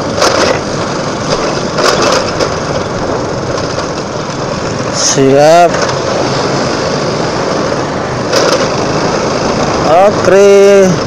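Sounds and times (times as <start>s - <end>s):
motorcycle engine: 0.0s - 11.0s
wind and road noise: 0.0s - 11.0s.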